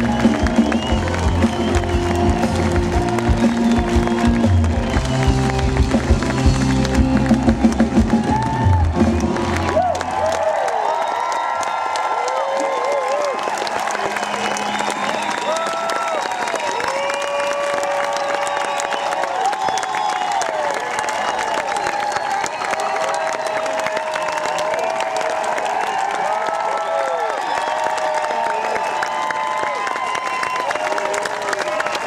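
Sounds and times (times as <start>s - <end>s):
audience applauding: 0.0s - 32.0s
crowd cheering: 0.0s - 32.0s.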